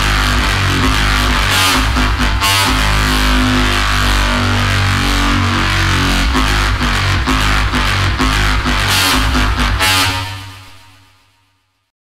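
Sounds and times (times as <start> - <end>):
electronic drums: 0.0 - 11.0
heavy synth bass: 0.0 - 11.6.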